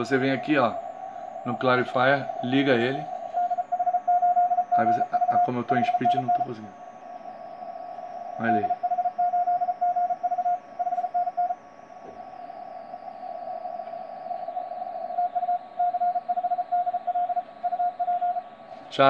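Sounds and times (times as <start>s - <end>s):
morse code tone keying: 0.0s - 12.2s, 15.2s - 18.5s
radio receiver hiss: 0.0s - 19.0s.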